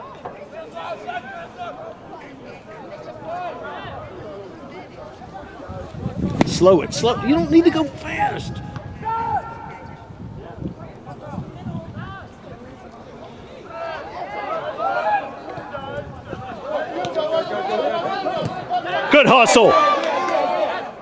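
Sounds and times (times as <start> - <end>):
distant voices shouting: 6.5 - 11.3, 13.6 - 21.0.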